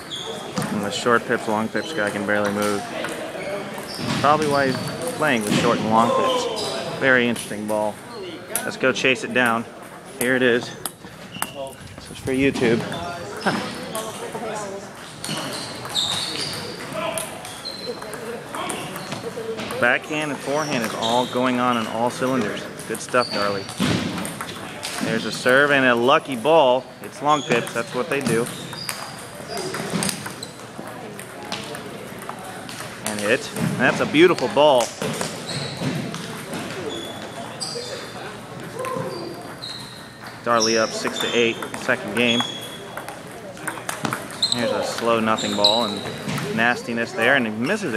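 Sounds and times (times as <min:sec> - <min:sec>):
murmur of many voices: 0:00.0 - 0:47.9
table tennis balls clicking: 0:02.0 - 0:05.6, 0:09.4 - 0:11.8, 0:12.6 - 0:26.4, 0:27.3 - 0:47.2.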